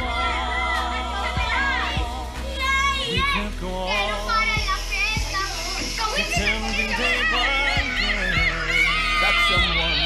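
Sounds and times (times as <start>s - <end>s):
children shouting and cheering: 0.0s - 10.0s
music playing: 0.0s - 10.0s.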